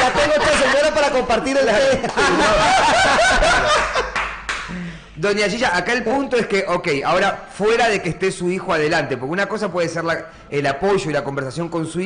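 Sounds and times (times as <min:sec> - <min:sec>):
men laughing: 0:00.0 - 0:05.0.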